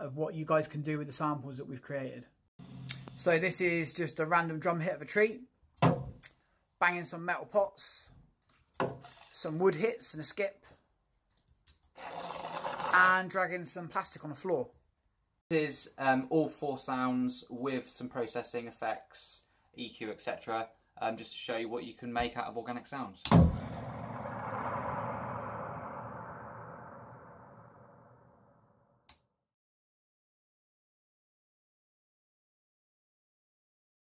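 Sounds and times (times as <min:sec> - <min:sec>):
plastic scraping across floor: 0:12.0 - 0:13.0
ringing processed sample hit: 0:23.5 - 0:28.2.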